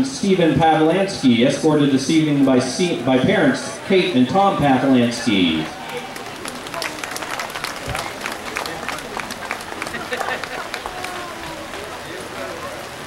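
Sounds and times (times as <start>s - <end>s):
faint voices: 0.0s - 13.0s
crowd applause: 3.4s - 13.0s.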